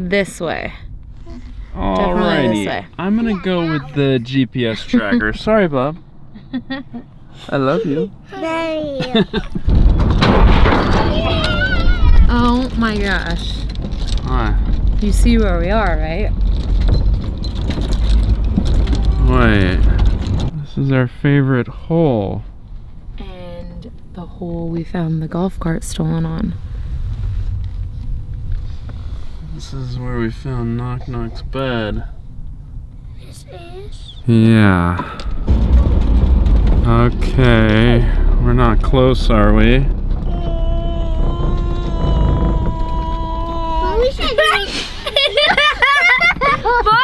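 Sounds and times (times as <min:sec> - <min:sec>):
cart rumbling over rough ground: 0:00.0 - 0:47.0
light clicks and rattles: 0:09.4 - 0:20.5
wind on microphone: 0:25.5 - 0:33.3, 0:35.1 - 0:45.0.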